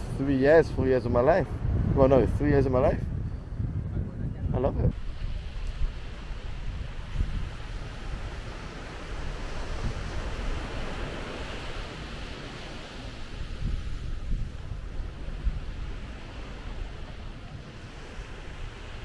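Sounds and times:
wind buffeting microphone: 0:00.0 - 0:19.0
surf washing onto beach: 0:04.9 - 0:19.0.

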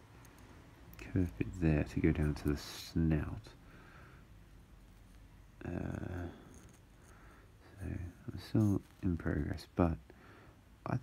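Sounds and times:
man saying um: 0:05.6 - 0:06.4, 0:07.6 - 0:10.0.

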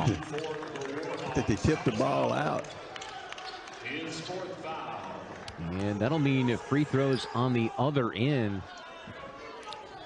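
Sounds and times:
faint voices in arena: 0:00.0 - 0:10.0.

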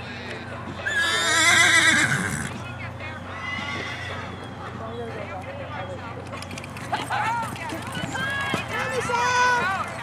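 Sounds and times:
pony whinnying: 0:00.8 - 0:02.6, 0:03.4 - 0:04.3.

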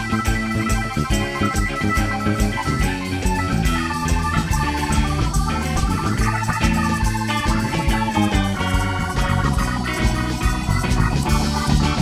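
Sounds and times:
bass guitar: 0:00.0 - 0:12.0
drums: 0:00.0 - 0:12.0
electric guitar: 0:00.0 - 0:12.0
organ lead: 0:00.0 - 0:12.0.

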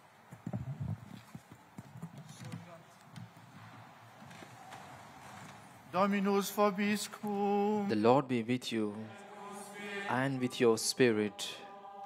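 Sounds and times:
people shuffling: 0:00.0 - 0:06.2
footsteps: 0:00.3 - 0:06.0.

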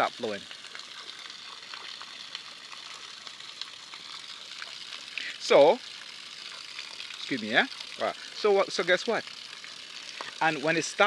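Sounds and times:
water pouring from pipe: 0:00.0 - 0:11.0.

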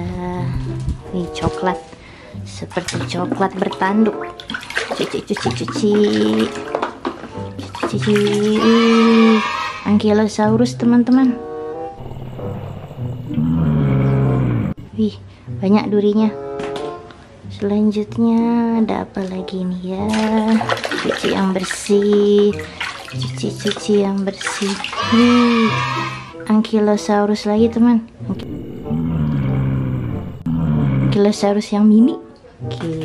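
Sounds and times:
dinosaur bellow: 0:08.6 - 0:09.9, 0:12.0 - 0:14.8, 0:25.0 - 0:26.4, 0:28.3 - 0:31.2.

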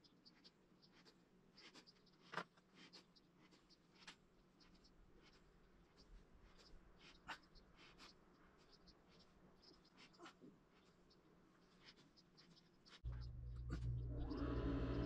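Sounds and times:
fingers scratching modelling clay: 0:00.0 - 0:14.0.

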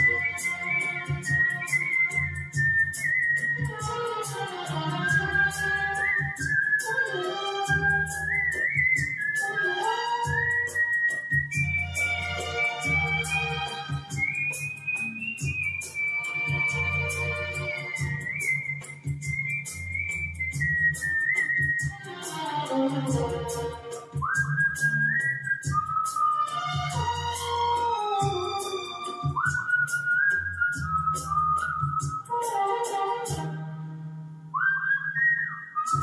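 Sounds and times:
man whistling a melody: 0:00.0 - 0:33.4, 0:34.5 - 0:36.0
karaoke backing track: 0:00.0 - 0:33.9.

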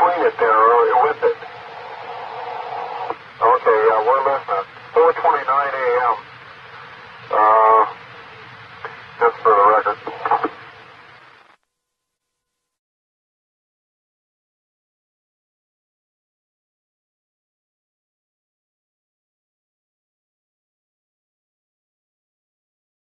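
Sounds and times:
muffled voices over two-way radio: 0:00.0 - 0:06.3, 0:07.3 - 0:08.0, 0:08.8 - 0:10.8
radio hiss: 0:00.0 - 0:11.6
steady hum: 0:00.0 - 0:12.3.

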